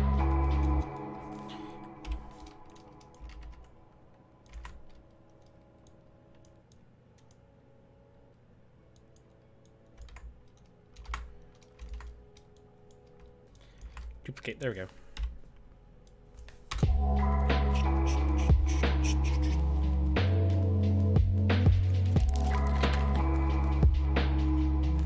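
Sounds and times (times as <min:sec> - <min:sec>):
computer keyboard and mouse clicks: 0:00.6 - 0:03.8, 0:04.4 - 0:07.4, 0:08.9 - 0:14.2.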